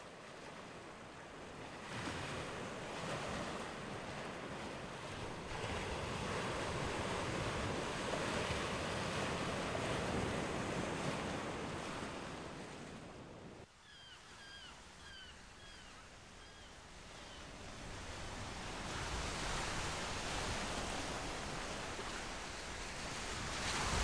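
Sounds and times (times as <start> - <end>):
waves washing onto shore: 0.0 - 13.6, 17.0 - 24.0.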